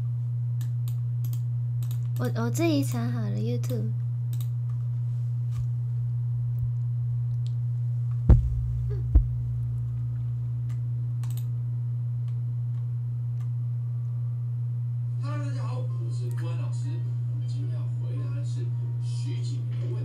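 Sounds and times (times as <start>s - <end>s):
steady low hum: 0.0s - 20.0s
dull thumps: 8.3s - 10.3s.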